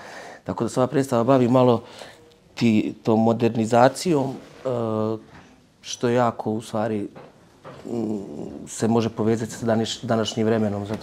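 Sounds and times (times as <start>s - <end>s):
man speaking: 0.4s - 1.9s, 2.5s - 11.0s.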